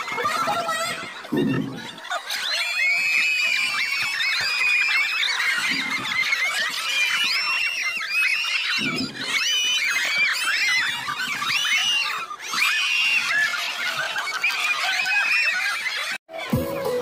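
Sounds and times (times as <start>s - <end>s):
crowd shrieking and cheering: 0.0s - 17.0s.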